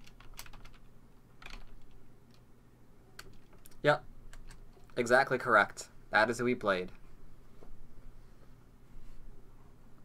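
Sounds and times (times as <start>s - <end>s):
keyboard keystrokes: 0.0s - 0.8s.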